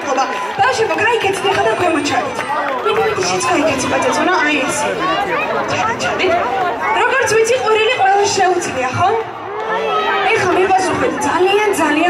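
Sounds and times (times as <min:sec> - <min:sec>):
children chattering and calling out: 0:00.0 - 0:12.0.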